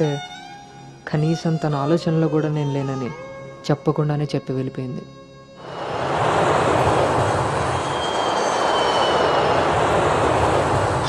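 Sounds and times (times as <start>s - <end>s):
high turbine whine: 5.6s - 11.0s
jet engines roaring: 5.6s - 11.0s.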